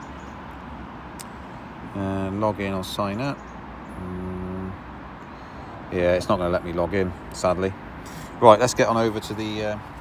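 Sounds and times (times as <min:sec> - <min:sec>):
quiet outdoor background: 0:00.0 - 0:10.0.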